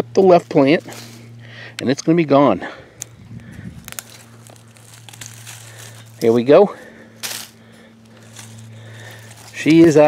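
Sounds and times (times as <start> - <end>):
steady low hum: 0.0 - 10.0
foliage and leaves rustling: 2.6 - 10.0.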